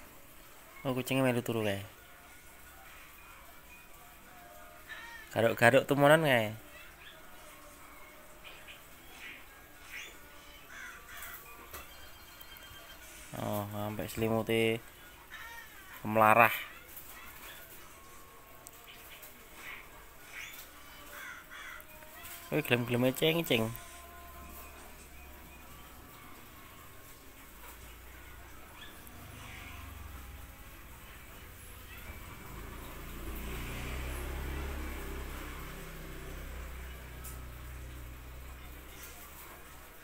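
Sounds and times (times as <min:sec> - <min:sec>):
faint animal calls: 0:04.0 - 0:14.0, 0:14.6 - 0:39.9.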